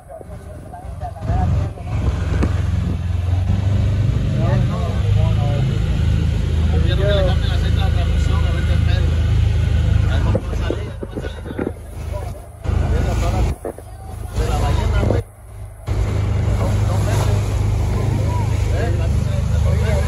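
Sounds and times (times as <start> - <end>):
outboard motor drone: 0.0 - 20.0
people's voices: 0.0 - 20.0.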